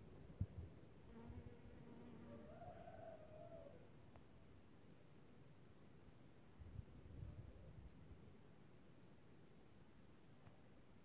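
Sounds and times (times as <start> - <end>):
bee buzzing in flight: 1.1 - 2.4.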